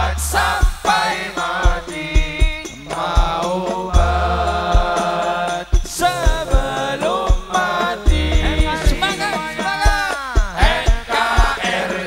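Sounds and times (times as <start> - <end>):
frame drum beats: 0.0 - 12.0
men singing in unison: 0.0 - 12.0
held low bass note: 8.1 - 9.0.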